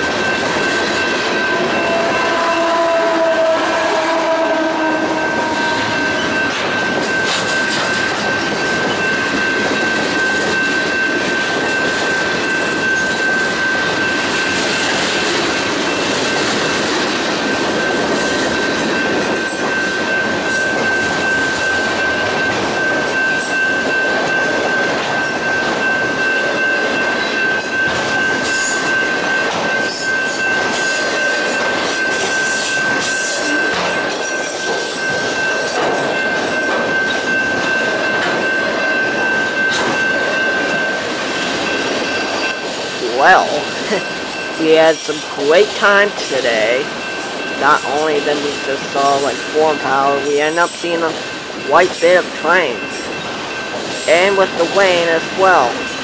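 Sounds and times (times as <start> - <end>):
train wheels clattering on rails: 0.0 - 3.2, 5.0 - 43.0, 50.6 - 54.1
steady high-pitched tone: 5.0 - 56.0.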